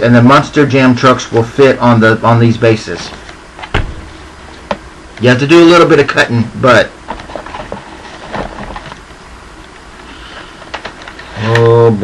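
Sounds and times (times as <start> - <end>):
cardboard and plastic rustling: 7.1 - 9.1.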